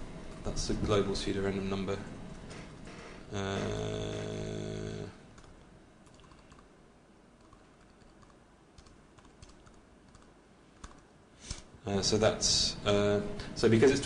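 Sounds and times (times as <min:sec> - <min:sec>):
person saying uh: 0:03.3 - 0:05.2
faint keyboard typing: 0:05.3 - 0:06.7, 0:07.4 - 0:11.7.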